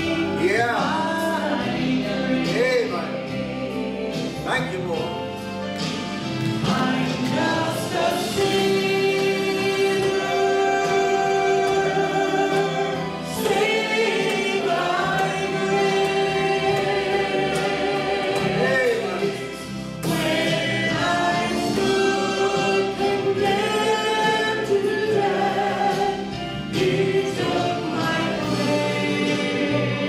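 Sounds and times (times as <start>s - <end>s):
woman singing gospel: 6.6s - 19.1s.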